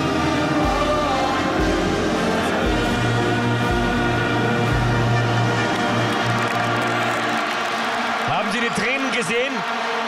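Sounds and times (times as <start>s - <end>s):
orchestral anthem over sound system: 0.0s - 10.0s.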